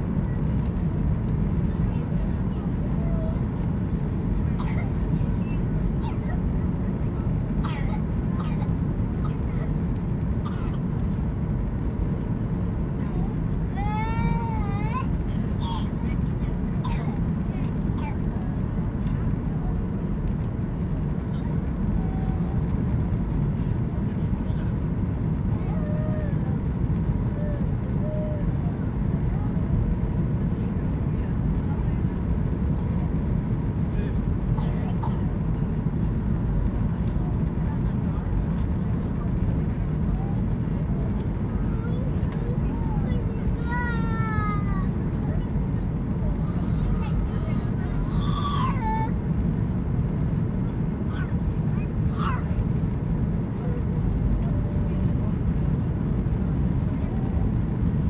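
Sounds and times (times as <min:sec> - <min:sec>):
airplane engine roar in cabin: 0:00.0 - 0:58.0.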